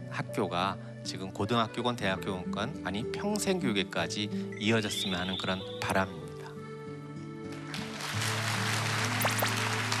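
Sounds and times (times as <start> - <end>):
soft background music: 0.0 - 10.0
audience applauding: 7.5 - 10.0.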